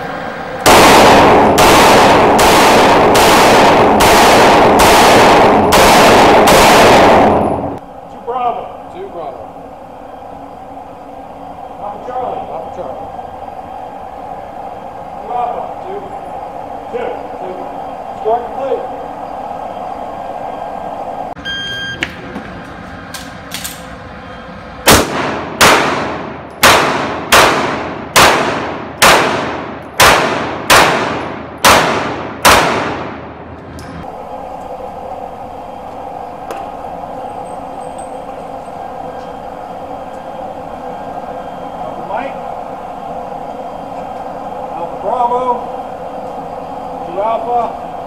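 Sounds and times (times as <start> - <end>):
steady hum: 0.0 - 48.0
pistol shots reverberating: 0.7 - 7.7, 24.9 - 33.2
shot timer beep: 21.4 - 22.0.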